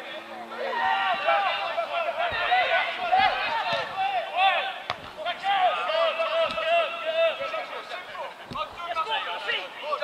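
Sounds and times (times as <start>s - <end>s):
people shouting: 0.6s - 7.4s
football kick thud: 4.8s - 5.3s, 6.4s - 6.7s.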